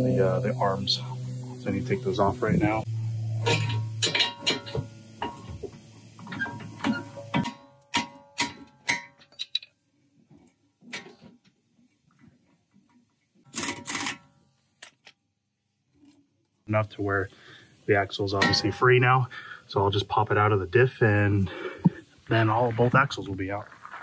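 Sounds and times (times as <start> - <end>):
steady low hum: 0.0 - 7.4, 16.7 - 24.0.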